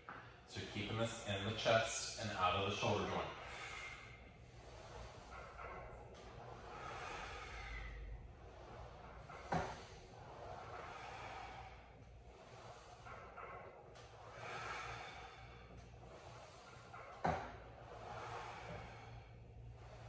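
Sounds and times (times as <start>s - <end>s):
man breathing heavily: 3.3s - 20.0s.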